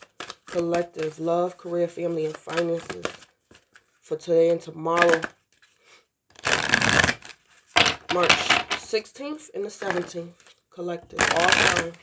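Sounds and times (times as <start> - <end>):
cards being shuffled: 0.0 - 8.9, 9.8 - 12.0.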